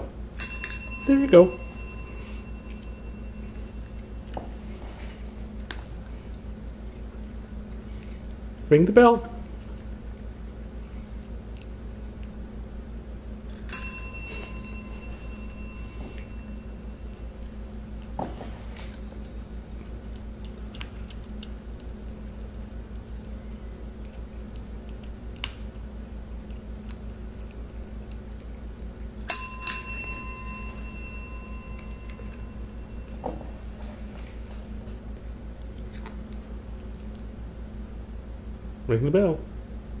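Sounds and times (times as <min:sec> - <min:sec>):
desk call bell ding: 0:00.4 - 0:03.8, 0:13.7 - 0:16.9, 0:29.3 - 0:33.2.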